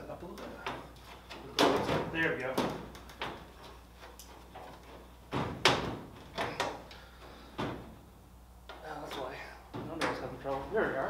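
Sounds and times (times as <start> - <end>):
aluminium panels knocking and clattering: 0.3 - 6.9, 7.5 - 8.0, 9.0 - 10.9.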